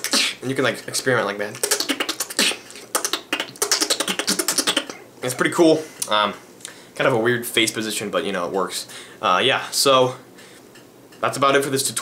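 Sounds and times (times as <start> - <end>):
beatboxing clicks and squeaks: 0.0 - 5.4.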